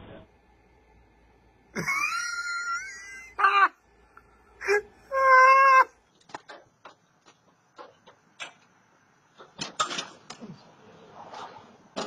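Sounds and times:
high-pitched cries: 1.8 - 3.8, 4.6 - 6.0.

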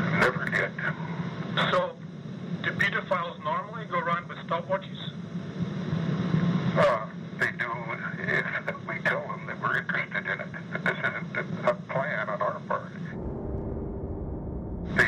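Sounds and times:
two men talking: 0.0 - 2.0, 2.6 - 5.2, 6.8 - 13.2
low hum and tape hiss: 0.0 - 15.0.

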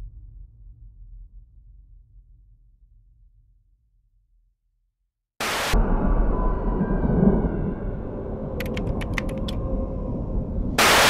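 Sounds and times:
burst of static hiss: 5.4 - 5.8, 10.8 - 11.0
low rumbling drone: 5.4 - 11.0
sharp clicks: 8.6 - 9.6.

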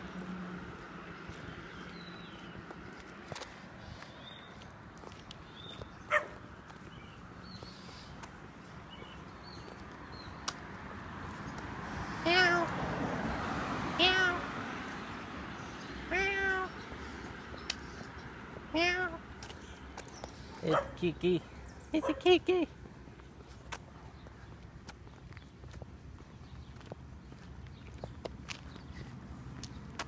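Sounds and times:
cat meowing: 12.3 - 12.7, 14.0 - 14.4, 16.1 - 16.8, 18.7 - 19.2.

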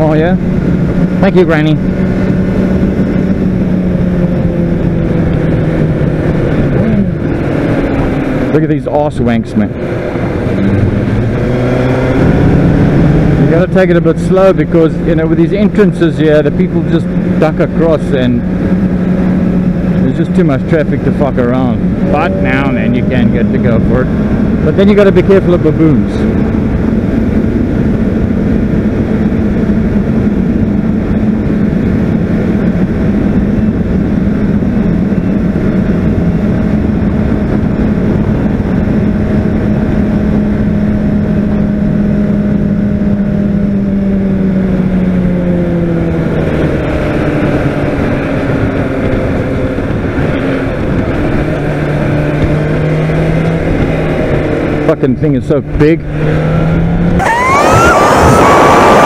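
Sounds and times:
motorcycle engine cruising: 0.0 - 59.0
wind noise on microphone: 0.0 - 59.0.

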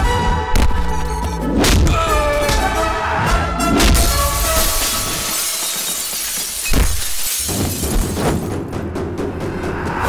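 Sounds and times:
glass pane shattering: 3.9 - 8.5.

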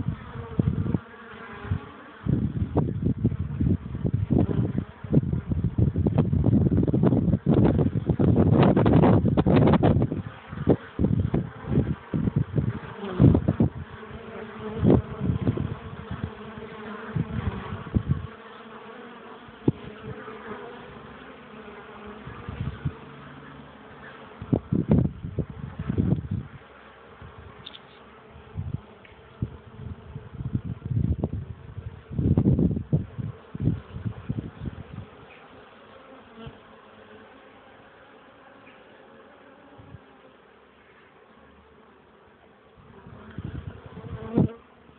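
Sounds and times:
honeybees buzzing: 0.0 - 44.9.

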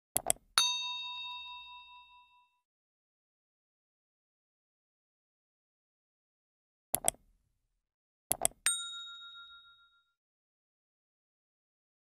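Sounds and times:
notification bell ding: 0.6 - 2.6, 8.7 - 10.2
quick clicks: 7.0 - 7.2.

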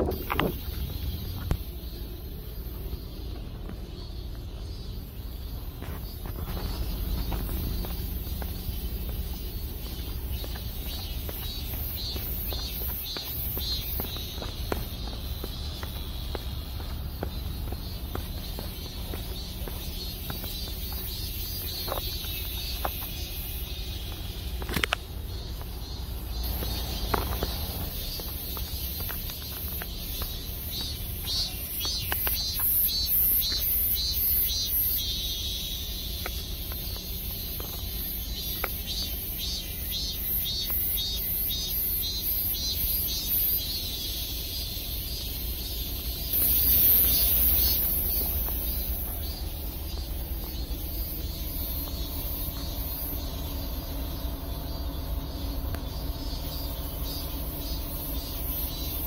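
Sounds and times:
steady low rumble: 0.0 - 59.0
rapid high-pitched chirping: 0.2 - 59.0.

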